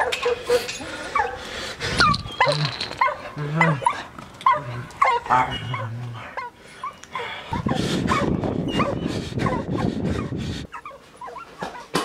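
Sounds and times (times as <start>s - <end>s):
dogs whimpering and yelping: 0.0s - 12.0s.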